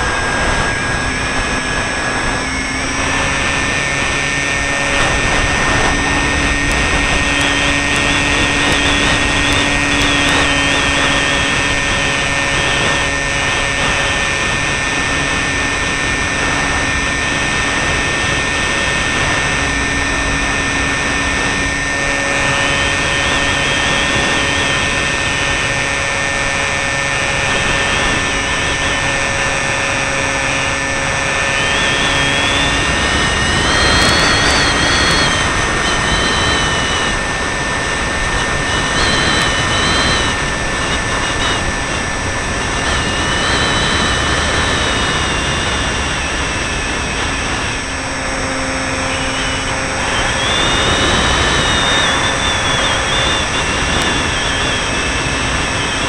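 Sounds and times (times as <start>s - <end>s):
electric motor and propeller whine: 0.0s - 56.0s
rush of air: 0.0s - 56.0s.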